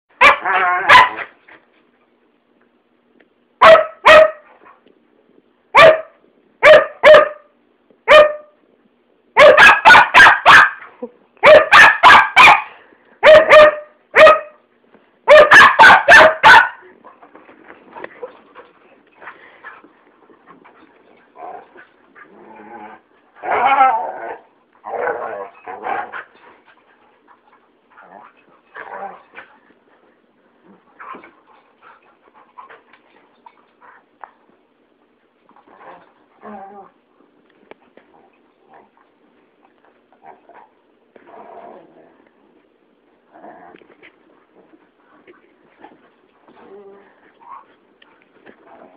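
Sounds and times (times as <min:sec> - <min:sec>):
dogs barking: 0:00.2 - 0:01.3, 0:03.6 - 0:04.4, 0:05.8 - 0:07.5, 0:09.4 - 0:10.8, 0:11.4 - 0:14.6, 0:15.3 - 0:16.8.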